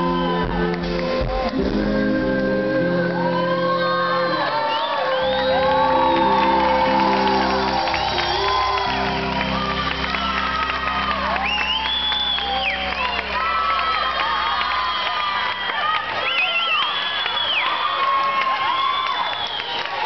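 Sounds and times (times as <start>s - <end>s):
live pop-rock band playing: 0.0s - 15.6s
audience shouting and whooping: 3.1s - 20.0s.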